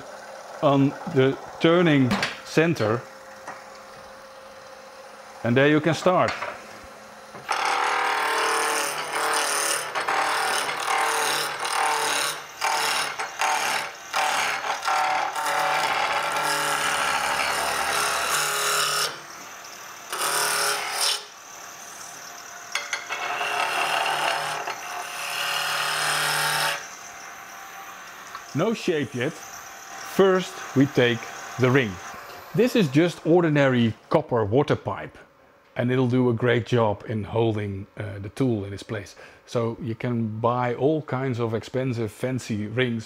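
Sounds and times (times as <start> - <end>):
lathe motor humming: 6.6 - 33.3
gouge cutting wood on lathe: 7.4 - 19.2, 20.0 - 22.1, 23.1 - 33.0.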